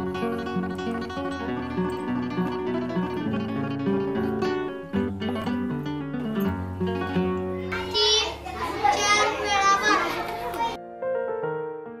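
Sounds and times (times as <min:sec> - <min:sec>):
background music with plucked notes: 0:00.0 - 0:08.2
children's voices: 0:07.6 - 0:10.8.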